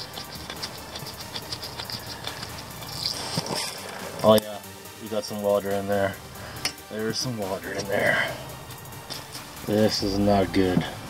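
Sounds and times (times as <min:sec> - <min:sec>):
clicking and scratching of bolt: 0:00.0 - 0:04.2.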